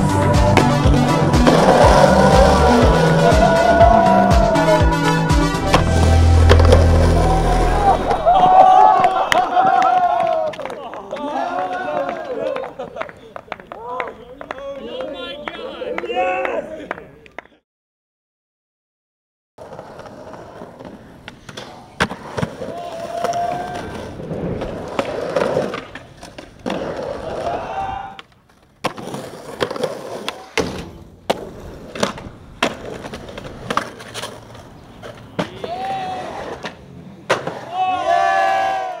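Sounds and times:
skateboard wheels rolling on pavement: 0:00.0 - 0:16.4, 0:19.6 - 0:39.0
people shouting: 0:01.5 - 0:05.1, 0:06.9 - 0:12.5, 0:27.2 - 0:28.2, 0:35.5 - 0:36.5, 0:37.7 - 0:39.0
skateboard pops and clacks: 0:20.0 - 0:27.1, 0:28.2 - 0:37.7.

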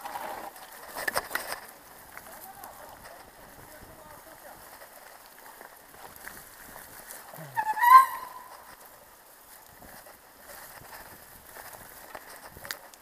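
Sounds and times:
mountain bike rattling on trail: 0:00.0 - 0:13.0.

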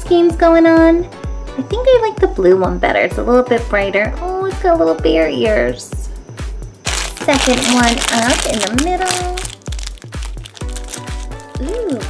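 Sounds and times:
music with low thumping beat: 0:06.4 - 0:12.0
plastic foil bag tearing: 0:06.9 - 0:12.0.

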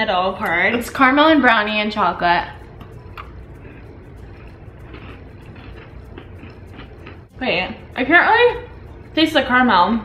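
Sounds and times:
steady low hum: 0:00.0 - 0:10.0
people chewing: 0:02.7 - 0:07.3.

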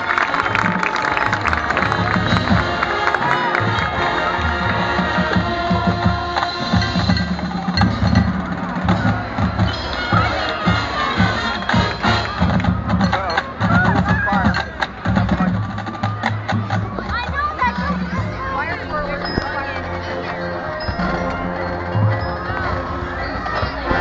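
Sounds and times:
wind instruments holding chords: 0:00.0 - 0:16.9, 0:17.5 - 0:24.0
crowd cheering: 0:00.0 - 0:24.0
drum beats: 0:00.0 - 0:24.0.

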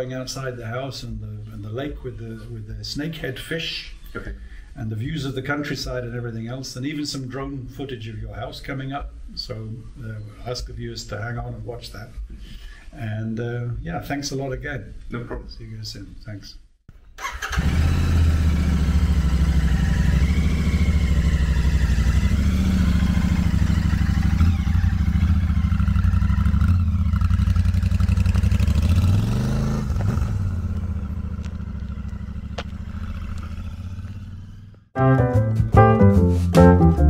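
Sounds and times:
motorcycle engine running: 0:17.5 - 0:34.9
music: 0:35.0 - 0:37.0.

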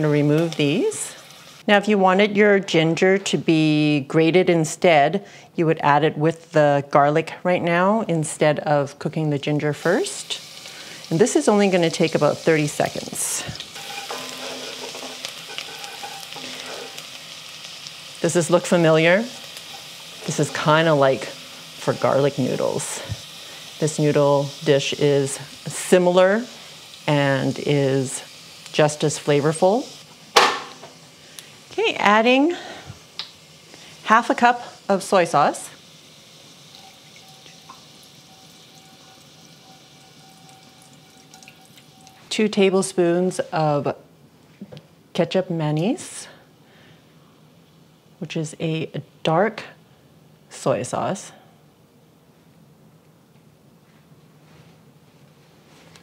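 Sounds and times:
garlic sizzling in a pan: 0:00.0 - 0:01.8, 0:08.2 - 0:43.9.

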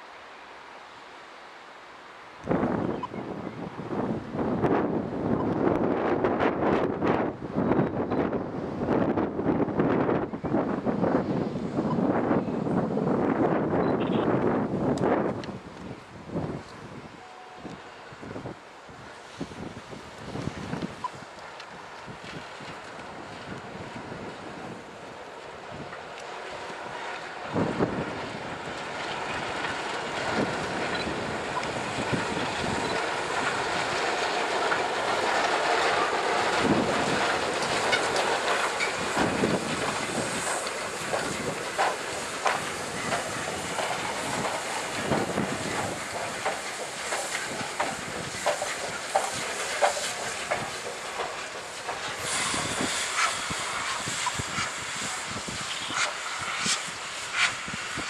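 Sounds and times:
steam locomotive hissing: 0:16.4 - 0:58.0
train wheels clicking over rail joints: 0:20.2 - 0:58.0.

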